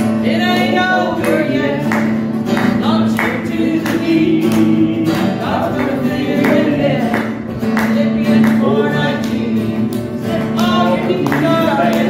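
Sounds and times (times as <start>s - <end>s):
person singing gospel song: 0.0s - 12.0s
strummed acoustic guitar: 0.0s - 12.0s.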